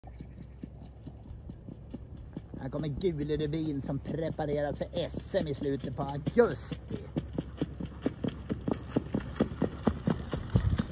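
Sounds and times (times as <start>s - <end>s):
horse hoofbeats on gravel: 0.0s - 10.9s.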